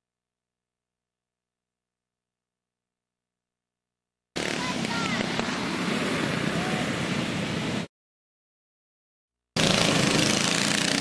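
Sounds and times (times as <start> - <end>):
people's voices: 4.4 - 5.4
go-kart engines running: 4.4 - 6.8, 9.6 - 11.0.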